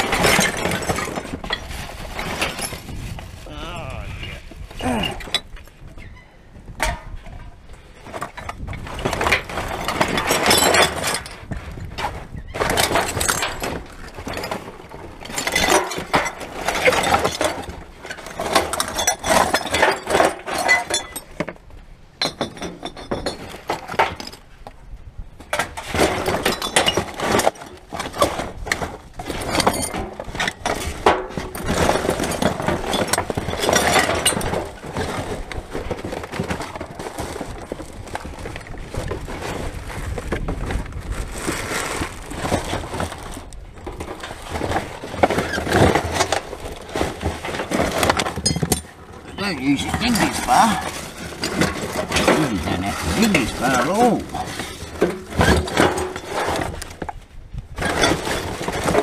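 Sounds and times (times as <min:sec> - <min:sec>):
rubbish rustling and clinking: 0:00.0 - 0:03.4, 0:06.7 - 0:59.0.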